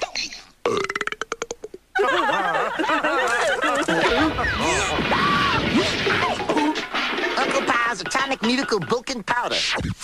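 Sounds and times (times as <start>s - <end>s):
long rattling belch: 0.6s - 1.8s.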